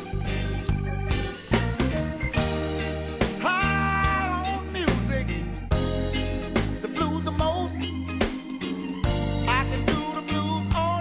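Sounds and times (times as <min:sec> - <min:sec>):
bass: 0:00.0 - 0:11.0
drums: 0:00.0 - 0:11.0.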